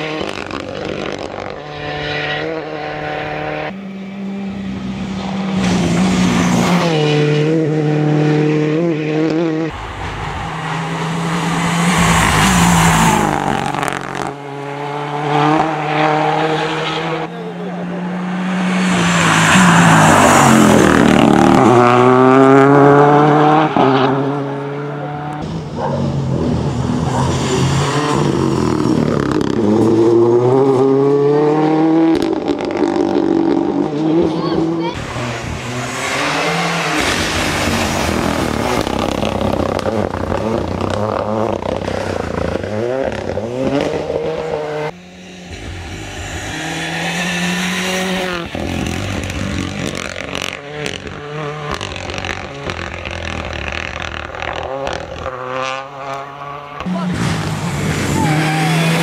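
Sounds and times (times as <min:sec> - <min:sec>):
rally car engine revving: 0:00.0 - 0:59.0.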